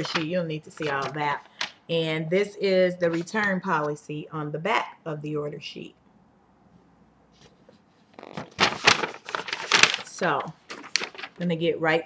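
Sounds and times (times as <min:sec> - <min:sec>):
paper rustling and crackling: 0:00.0 - 0:01.8, 0:03.1 - 0:03.5, 0:07.5 - 0:11.5.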